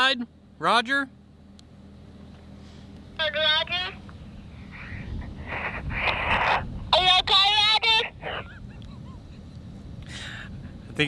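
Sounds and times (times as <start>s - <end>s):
child's voice over walkie-talkie: 3.2s - 4.0s, 5.6s - 8.4s
radio hiss: 4.6s - 8.5s.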